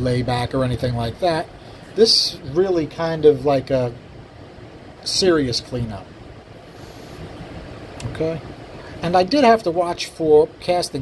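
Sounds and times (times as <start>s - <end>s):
room tone hum and hiss: 0.0s - 11.0s.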